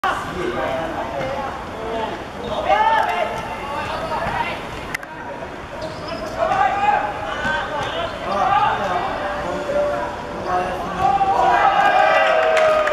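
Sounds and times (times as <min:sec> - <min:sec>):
voices calling out: 0:01.5 - 0:12.9.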